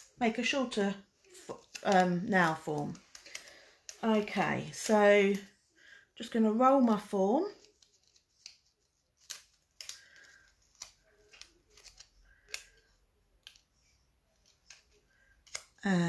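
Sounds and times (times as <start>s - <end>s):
plastic form crinkling: 1.2s - 5.5s, 7.0s - 16.0s.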